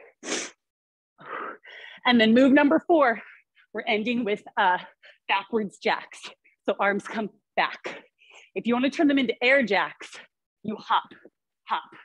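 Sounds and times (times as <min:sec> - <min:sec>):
woman breathing: 0:01.2 - 0:02.1.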